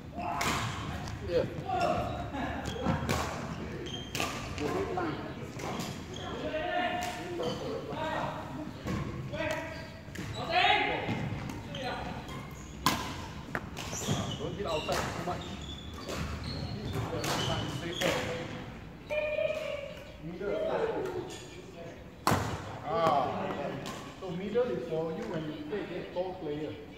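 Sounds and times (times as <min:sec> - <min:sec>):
voices echoing in a hall: 0:00.0 - 0:26.9
rackets striking shuttlecocks: 0:11.1 - 0:15.3.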